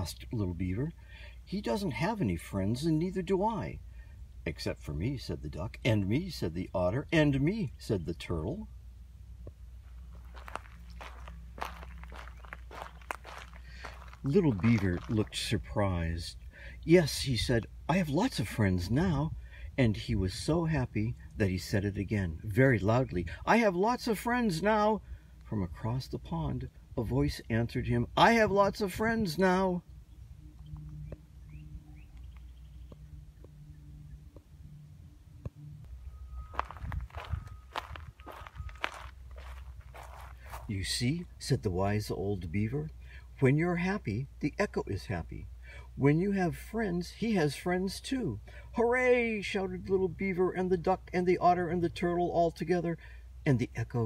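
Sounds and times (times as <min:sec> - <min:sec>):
footsteps on gravel trail: 0:09.8 - 0:15.8, 0:36.5 - 0:41.3.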